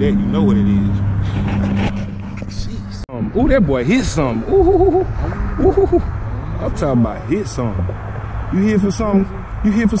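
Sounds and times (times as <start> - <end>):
low-pitched hum: 0.0 - 8.6.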